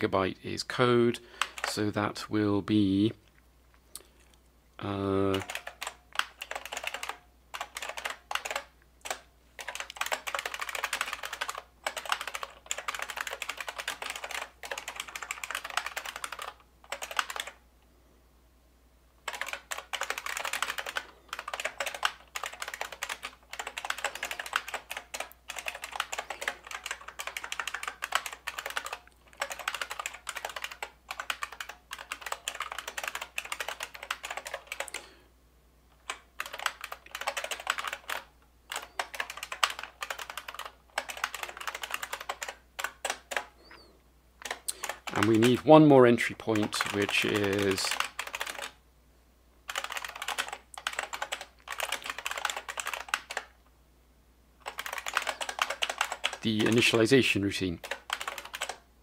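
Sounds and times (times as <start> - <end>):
computer keyboard typing: 1.4 - 1.9, 4.8 - 17.6, 19.2 - 35.2, 36.0 - 48.8, 49.7 - 53.6, 54.6 - 58.8.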